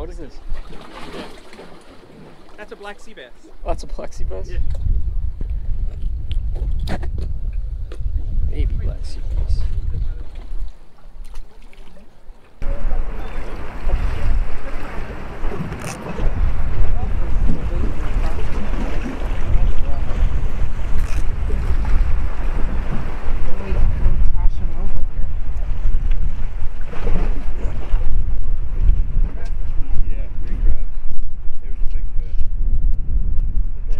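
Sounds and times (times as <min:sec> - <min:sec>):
water washing: 0:00.2 - 0:03.9, 0:09.1 - 0:28.2
wind buffeting microphone: 0:03.5 - 0:11.5, 0:12.6 - 0:33.9.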